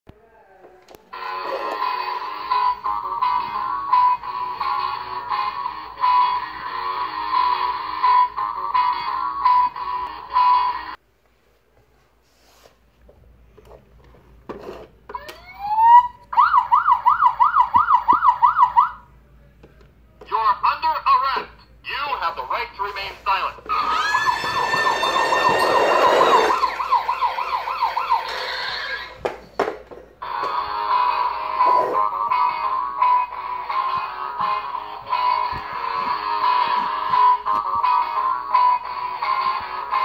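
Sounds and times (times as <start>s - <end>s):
warbling toy siren: 15.2s - 19.0s, 23.7s - 29.2s
electronic tune from toy speaker: 23.8s - 29.1s.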